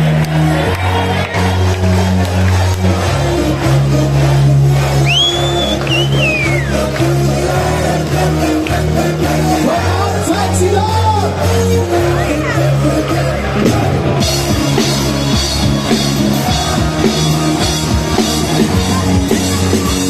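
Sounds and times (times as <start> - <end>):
deep bass line: 0.0 - 20.0
live band playing amplified music: 0.0 - 20.0.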